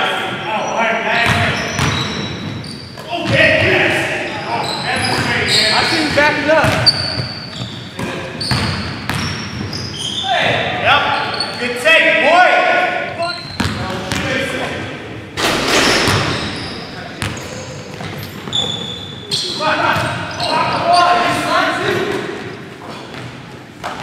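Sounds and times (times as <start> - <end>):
players calling out: 0.5 - 14.8, 15.7 - 22.6
basketball bouncing on wooden floor: 1.2 - 2.6, 6.1 - 9.8.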